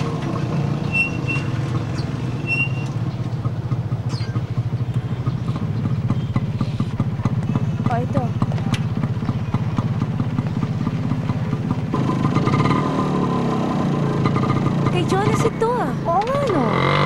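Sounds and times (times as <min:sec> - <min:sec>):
vehicle engine running: 0:00.0 - 0:17.0.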